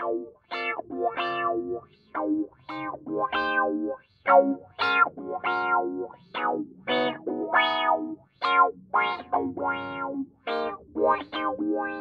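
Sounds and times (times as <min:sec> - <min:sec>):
electric guitar phrases with effects: 0:00.0 - 0:12.0.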